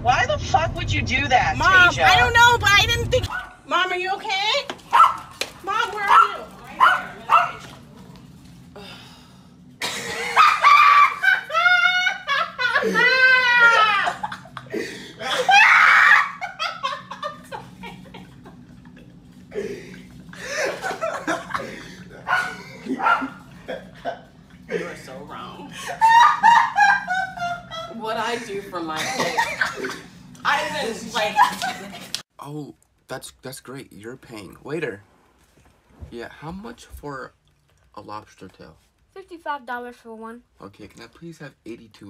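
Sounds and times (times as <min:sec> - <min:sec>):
dog barking: 0:03.3 - 0:03.6, 0:04.9 - 0:05.4, 0:06.0 - 0:07.8, 0:22.2 - 0:23.5
dog high drawn-out cry: 0:04.9 - 0:05.3
person laughing high-pitched: 0:10.2 - 0:18.4.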